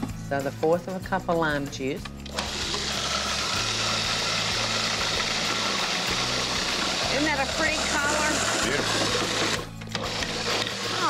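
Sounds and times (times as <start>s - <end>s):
food processor motor running: 2.3s - 11.0s.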